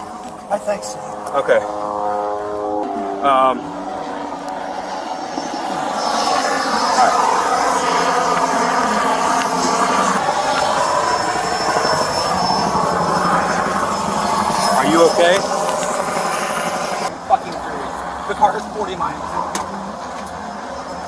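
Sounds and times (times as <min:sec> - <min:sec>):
road traffic passing: 0:00.0 - 0:21.0.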